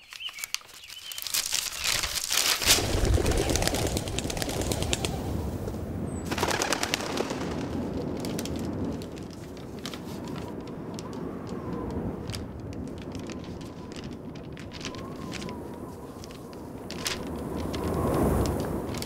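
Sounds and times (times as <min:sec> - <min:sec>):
paper crinkling and crackling: 0:00.0 - 0:05.5, 0:06.3 - 0:19.0
steady rushing noise: 0:01.8 - 0:19.0.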